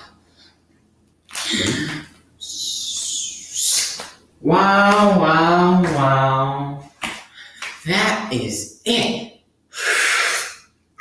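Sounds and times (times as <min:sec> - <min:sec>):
person making vocal sounds: 0:01.3 - 0:06.9, 0:09.8 - 0:10.6.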